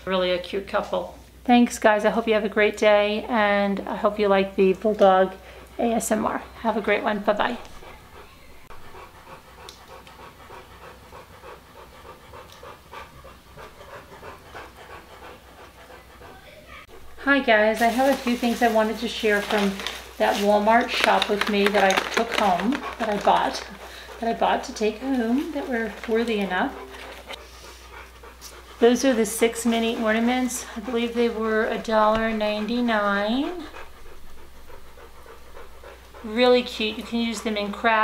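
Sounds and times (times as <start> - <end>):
woman speaking: 0.0 - 8.7, 16.0 - 27.0, 28.8 - 33.8, 36.2 - 38.0
dog panting: 2.0 - 38.0.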